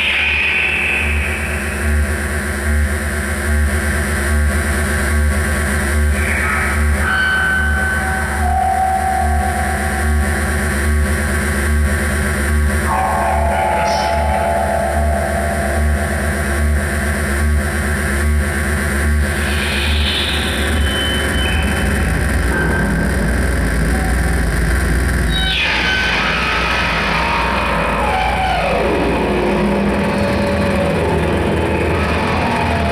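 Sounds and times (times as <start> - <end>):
distorted wall of noise: 0.0 - 32.9
pulsing low drone: 0.0 - 32.9
burst of high noise: 19.2 - 28.5.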